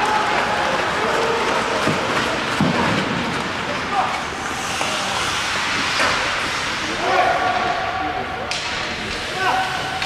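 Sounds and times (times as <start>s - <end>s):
skate blades scraping on ice: 0.2s - 7.5s.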